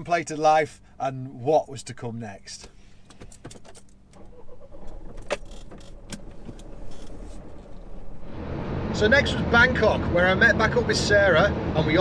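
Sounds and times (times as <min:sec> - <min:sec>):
engine rumble: 0:00.0 - 0:12.0.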